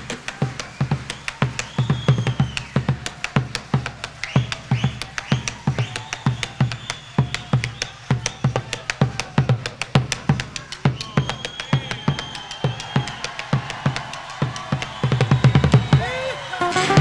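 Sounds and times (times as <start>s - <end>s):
bass drum beating: 12.9s - 16.0s
high sliding melody: 16.6s - 17.0s.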